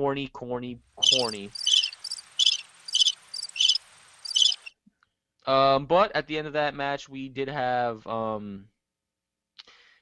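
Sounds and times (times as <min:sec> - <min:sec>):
cricket chirping: 0:01.0 - 0:04.7.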